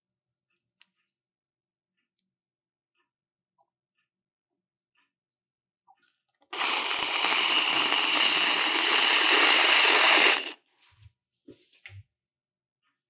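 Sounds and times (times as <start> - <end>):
whipped cream dispenser spraying: 6.5 - 10.6.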